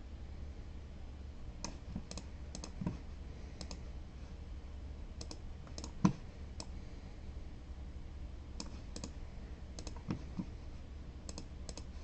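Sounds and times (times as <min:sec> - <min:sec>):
low steady hum: 0:00.0 - 0:12.0
keyboard keys clicking: 0:09.8 - 0:10.1.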